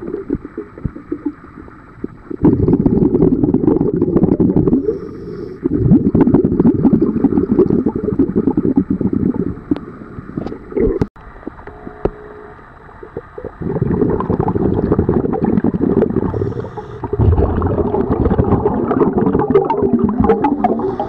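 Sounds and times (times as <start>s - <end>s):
underwater bubbling rumble: 0.0s - 11.1s, 12.8s - 21.0s.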